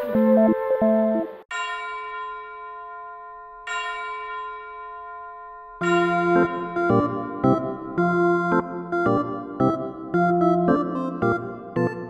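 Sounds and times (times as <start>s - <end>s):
bell-like chime ringing: 1.5s - 9.0s.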